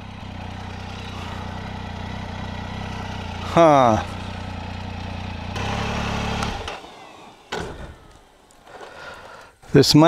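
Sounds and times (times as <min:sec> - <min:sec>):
motorcycle engine idling: 0:00.0 - 0:09.8.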